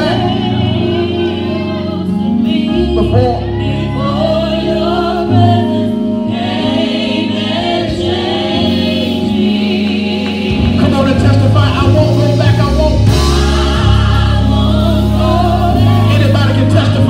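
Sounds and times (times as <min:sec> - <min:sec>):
man singing into microphone: 0:02.6 - 0:04.7, 0:10.6 - 0:17.0.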